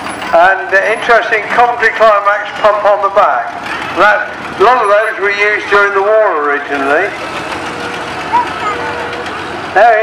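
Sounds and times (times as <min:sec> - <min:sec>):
vehicle engines driving past: 0:00.0 - 0:10.0.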